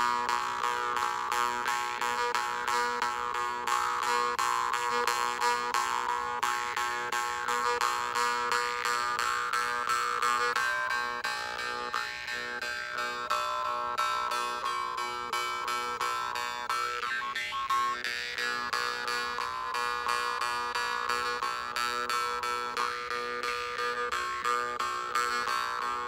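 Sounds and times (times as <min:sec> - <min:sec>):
jew's harps droning: 0:00.0 - 0:26.0.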